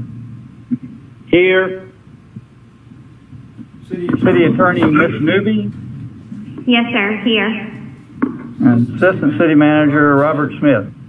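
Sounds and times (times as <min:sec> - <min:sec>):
low background hum: 0:00.0 - 0:11.0
man speaking: 0:03.8 - 0:05.8, 0:08.6 - 0:11.0.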